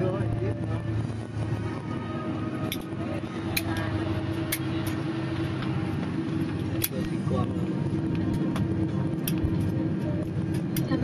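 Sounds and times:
airliner engines and airflow rushing: 0.0s - 11.0s
faint passenger voices: 0.0s - 11.0s
low hum: 0.0s - 11.0s.

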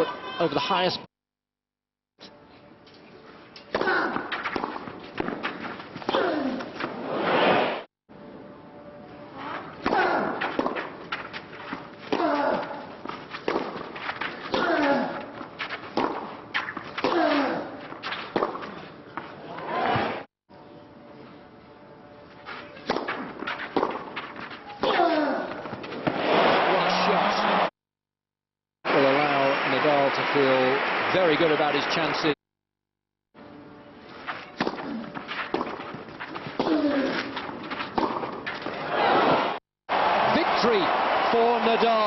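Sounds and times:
racket hitting tennis ball: 3.6s - 7.0s, 9.8s - 18.9s, 22.5s - 26.4s, 34.3s - 38.8s
crowd noise: 26.1s - 27.7s, 28.9s - 32.3s, 38.6s - 42.0s.

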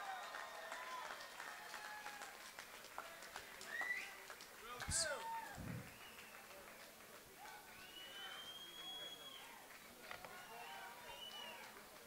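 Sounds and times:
faint indistinct voices: 3.0s - 12.0s.

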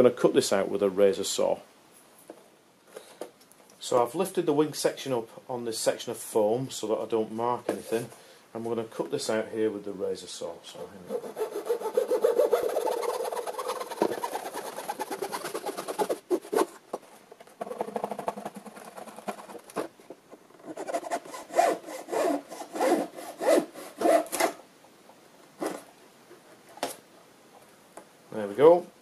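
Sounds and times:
saw cutting wood: 11.0s - 16.6s, 20.6s - 24.6s.

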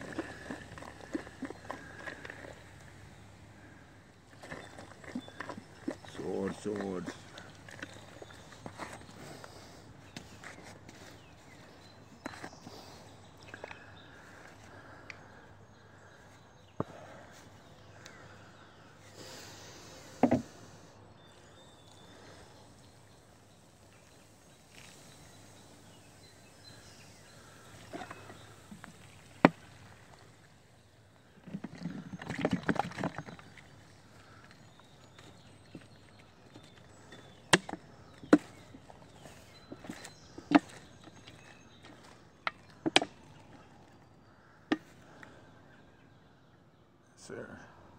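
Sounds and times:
rustle: 21.9s - 30.6s.

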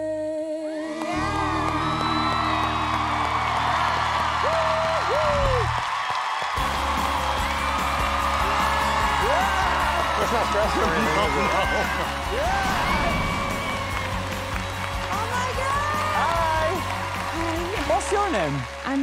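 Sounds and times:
audience cheering and whooping: 0.8s - 18.7s.

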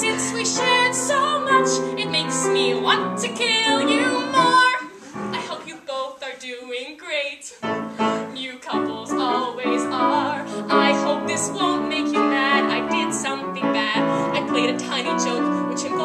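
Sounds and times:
piano chords: 0.0s - 5.7s, 7.6s - 16.0s
woman singing: 0.0s - 16.0s.

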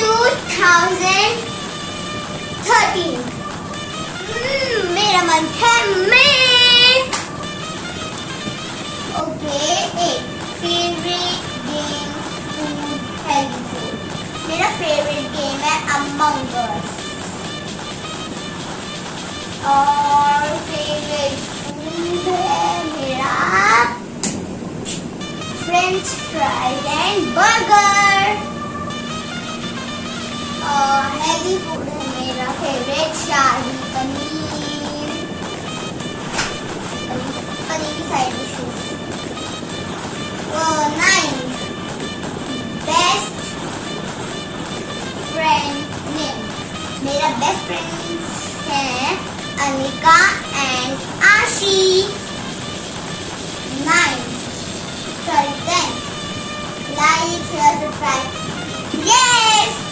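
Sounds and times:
child's sing-song voice: 0.0s - 7.5s, 8.4s - 17.0s, 19.6s - 24.0s, 25.6s - 29.0s, 30.6s - 35.6s, 36.4s - 39.2s, 40.0s - 41.8s, 42.4s - 52.5s, 53.7s - 54.4s, 55.2s - 59.9s
background music: 0.0s - 59.9s.

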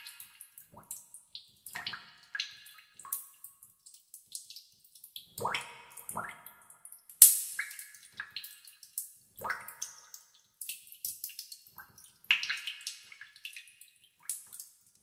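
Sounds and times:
water dripping in cave: 0.0s - 15.0s.

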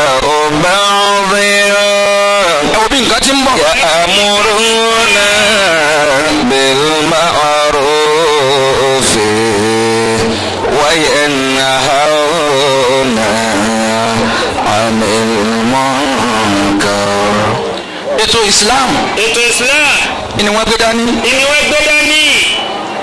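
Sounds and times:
man chanting: 0.0s - 22.5s.

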